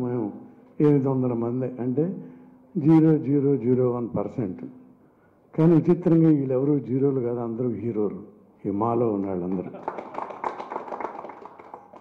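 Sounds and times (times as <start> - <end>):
small group applauding: 9.5 - 12.0.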